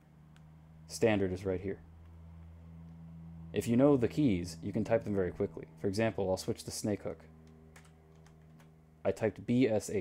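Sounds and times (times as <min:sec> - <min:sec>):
steady low hum: 0:00.0 - 0:10.0
keyboard keys clicking: 0:07.5 - 0:08.7.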